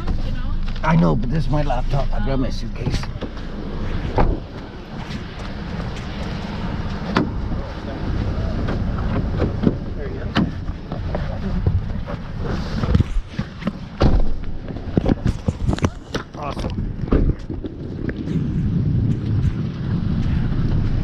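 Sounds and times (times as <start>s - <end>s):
suitcase wheels rumbling on asphalt: 0.0s - 21.0s
wind on microphone: 2.7s - 21.0s.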